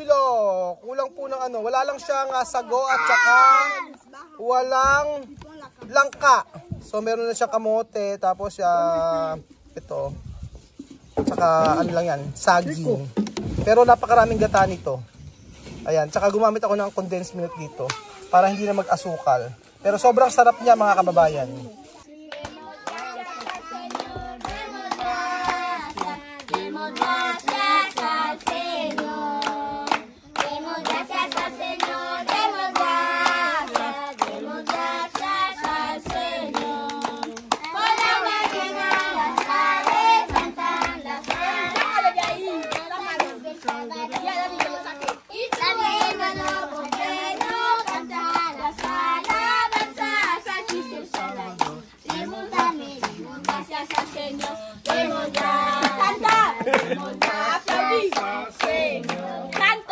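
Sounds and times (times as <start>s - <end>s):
group singing: 22.2s - 59.9s
hands clapping in time: 22.3s - 59.8s.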